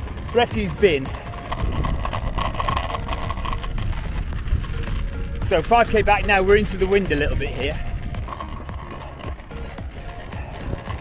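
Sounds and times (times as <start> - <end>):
measuring wheel rolling on concrete: 0.0 - 11.0
wind buffeting microphone: 0.0 - 11.0.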